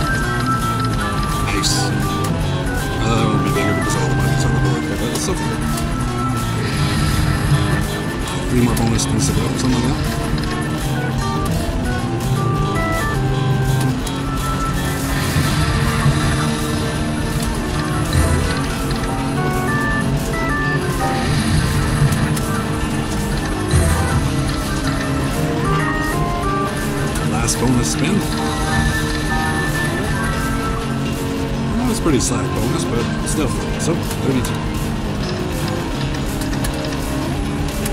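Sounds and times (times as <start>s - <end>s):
slot machine bonus music: 0.0s - 37.9s.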